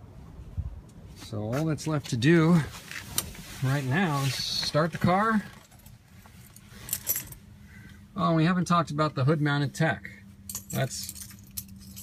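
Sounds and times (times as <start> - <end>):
car keys jingling: 5.2 - 7.4, 10.5 - 12.0.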